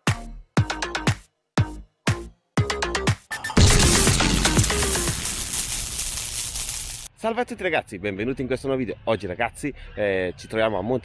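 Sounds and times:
noise tail: 0:03.3 - 0:07.1.

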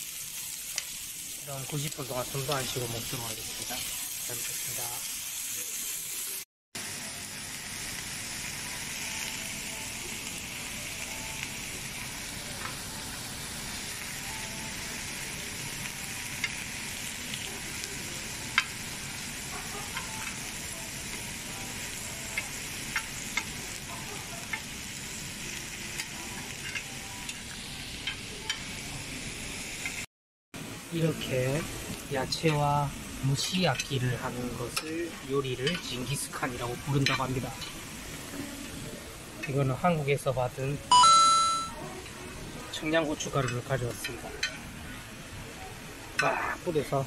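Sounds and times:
meat and vegetables sizzling: 0:00.0 - 0:47.0.

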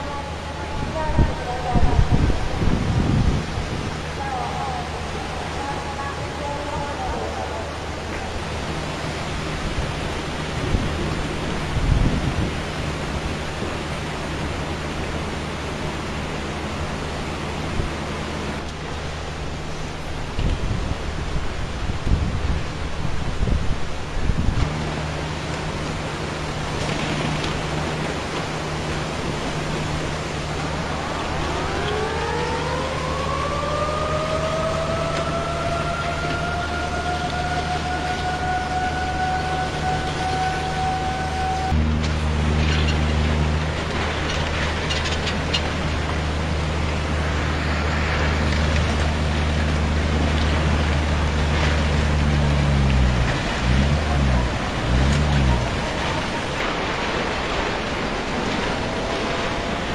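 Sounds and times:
warning siren wailing: 0:00.0 - 0:18.7, 0:24.7 - 0:59.9
floodwater rushing: 0:00.0 - 0:59.9
low hum: 0:00.0 - 0:59.9.

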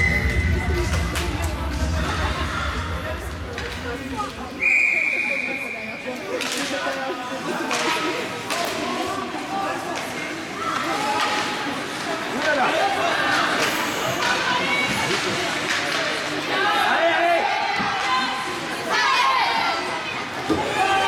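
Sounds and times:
spectators chatting: 0:00.0 - 0:21.0
long whistle blast: 0:04.6 - 0:05.9
sticks and puck clacking on ice: 0:06.3 - 0:16.5.

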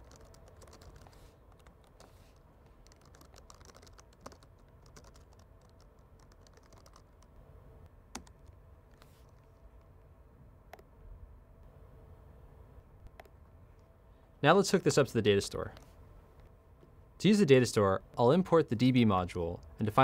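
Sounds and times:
typing on computer keyboard: 0:00.0 - 0:02.1, 0:02.8 - 0:07.3.

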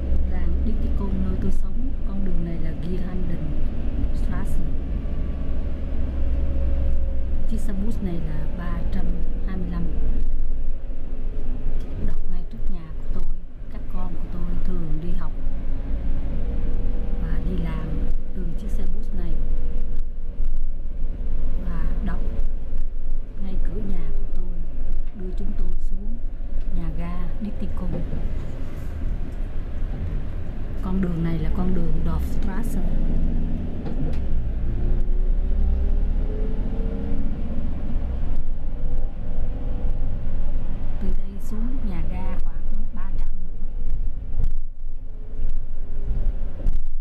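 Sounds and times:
engine and road rumble: 0:00.0 - 0:47.0
faint steady whine: 0:00.0 - 0:47.0.

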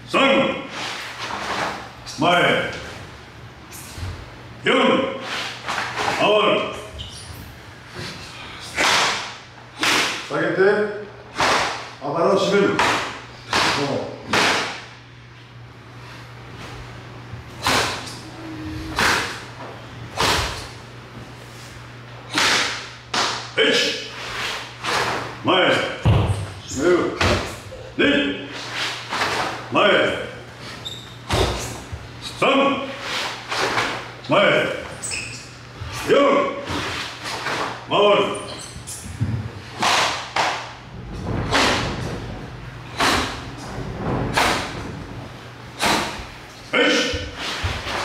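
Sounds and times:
hand strikes slapping bodies: 0:08.6 - 0:10.3, 0:12.7 - 0:14.8.

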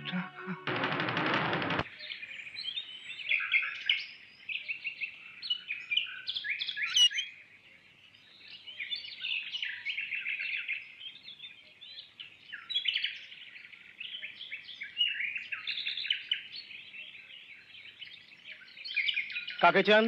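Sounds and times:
small birds chirping: 0:01.8 - 0:20.0.

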